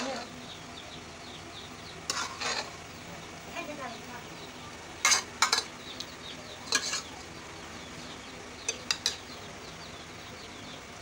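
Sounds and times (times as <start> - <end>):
spoon stirring and scraping pot: 0.0 - 0.3, 2.0 - 3.0, 5.0 - 7.2, 8.7 - 9.3
low cooking hiss: 0.0 - 11.0.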